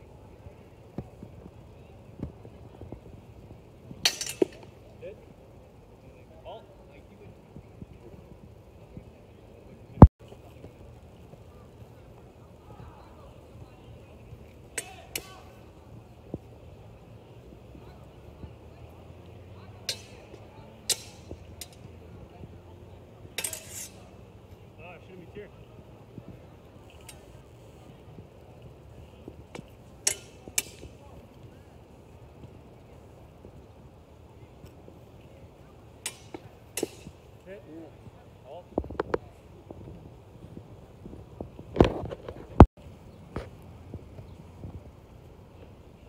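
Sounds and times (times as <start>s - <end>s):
swords clashing: 23.4s - 24.0s, 30.1s - 30.8s.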